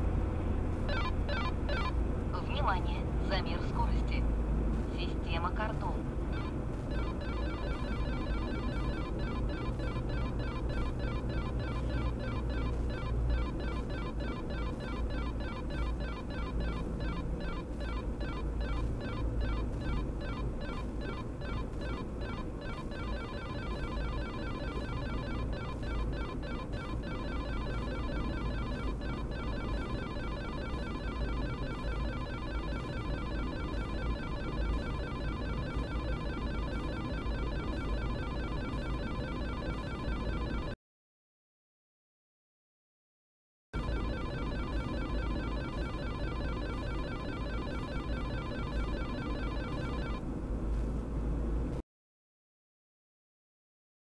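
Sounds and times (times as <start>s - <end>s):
car road and engine noise: 0.0s - 40.8s, 43.8s - 51.8s
rapid electronic beeps: 6.4s - 40.7s, 43.8s - 50.2s.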